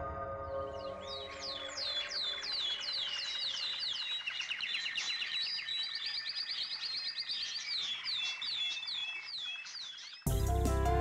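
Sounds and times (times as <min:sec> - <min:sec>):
bird trill: 0:00.0 - 0:10.3
songbirds chirping: 0:00.0 - 0:11.0.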